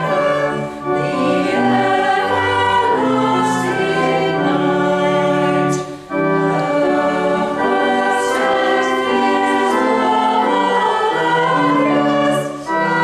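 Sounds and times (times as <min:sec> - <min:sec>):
choir singing a carol: 0:00.0 - 0:13.0.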